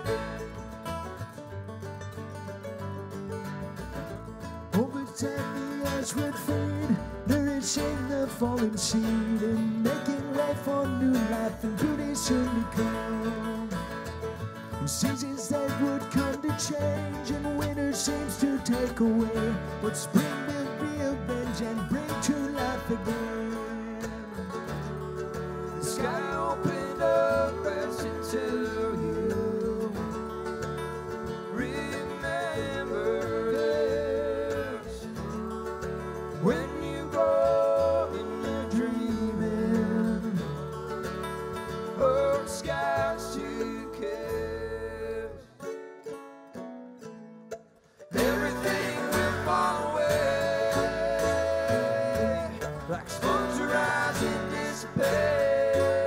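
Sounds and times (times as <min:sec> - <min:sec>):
upright bass: 0:00.0 - 0:45.6, 0:47.5 - 0:56.0
acoustic guitar: 0:00.0 - 0:56.0
banjo: 0:00.0 - 0:56.0
mandolin: 0:00.0 - 0:56.0.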